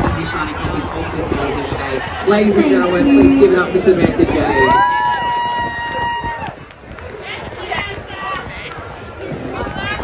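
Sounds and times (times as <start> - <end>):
outdoor crowd voices: 0.0 - 10.0.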